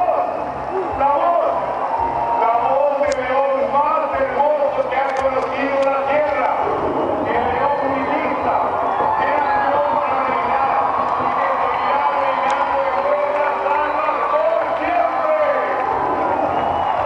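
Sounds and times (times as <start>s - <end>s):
voice over stadium sound system: 0.0s - 16.3s
music over sound system: 0.0s - 17.0s
sharp clicks: 4.8s - 6.5s.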